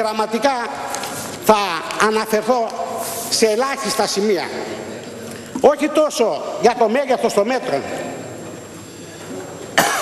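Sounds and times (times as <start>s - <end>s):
low background noise: 0.0s - 10.0s
sharp cough: 9.8s - 10.0s.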